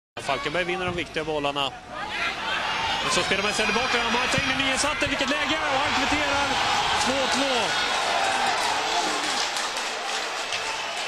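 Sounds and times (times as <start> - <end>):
stadium crowd cheering: 1.8 - 11.0.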